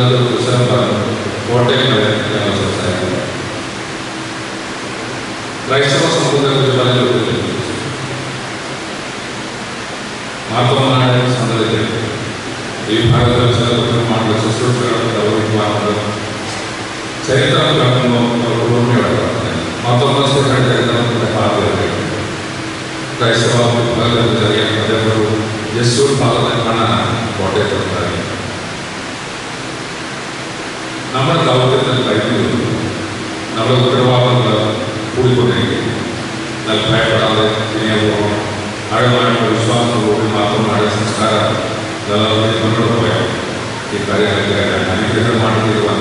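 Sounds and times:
man's amplified speech: 0.0s - 3.6s, 5.6s - 8.0s, 10.4s - 22.4s, 23.1s - 28.6s, 31.1s - 46.0s
man's voice over a loudspeaker: 0.0s - 3.7s, 5.6s - 8.2s, 10.4s - 28.7s, 31.0s - 46.0s
steady hiss: 0.0s - 46.0s.

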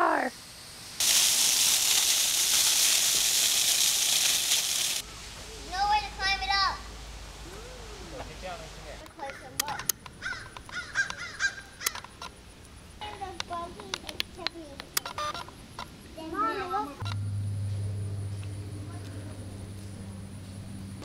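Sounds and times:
sharp clicks: 11.8s - 12.4s, 13.4s - 15.9s, 17.0s - 17.2s
indistinct voices talking: 13.0s - 21.0s
steady low hum: 14.2s - 21.0s.

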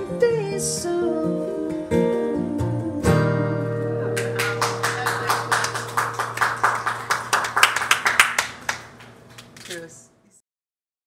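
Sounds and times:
small group clapping: 4.1s - 9.8s.

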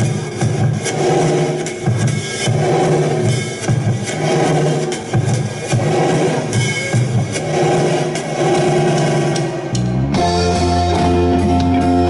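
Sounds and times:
drum hits: 0.0s - 12.0s
rock band playing live: 9.4s - 12.0s.

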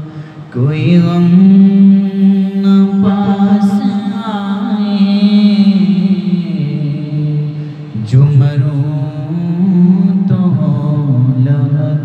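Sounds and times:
man singing unaccompanied: 0.0s - 12.0s.

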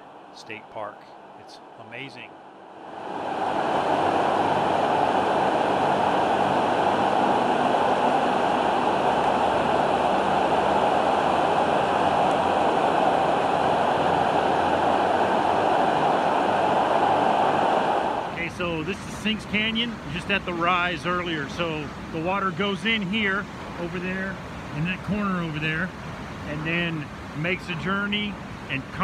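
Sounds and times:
river water rushing: 2.8s - 19.1s.

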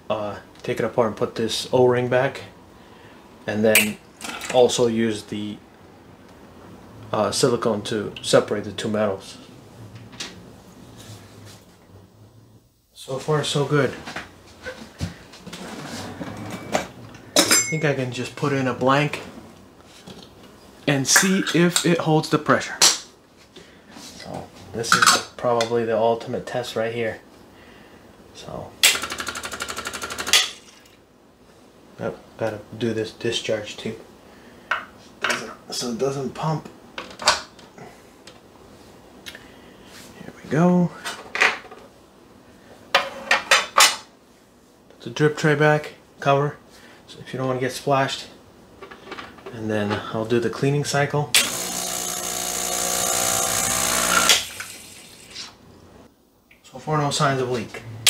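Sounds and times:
espresso machine low hum: 51.4s - 54.6s.

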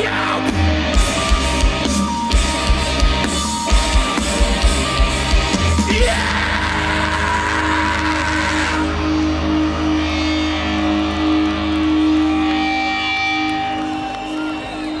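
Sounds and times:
electric guitar notes ringing: 0.0s - 15.0s
low bass drone: 0.4s - 13.8s.

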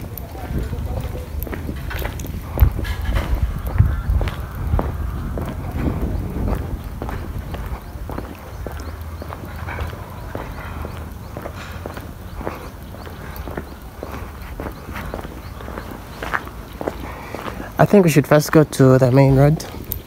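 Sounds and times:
low microphone rumble: 0.0s - 17.8s
footsteps walking downhill: 0.0s - 20.0s.

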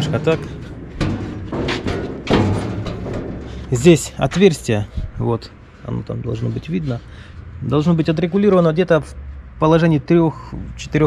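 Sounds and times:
hollow knocks on sheet metal: 0.0s - 4.1s.

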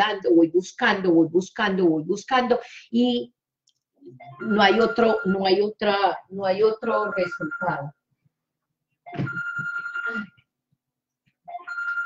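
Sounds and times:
telephone ringtone: 4.2s - 5.6s, 6.9s - 7.9s, 9.1s - 10.4s, 11.5s - 12.0s.

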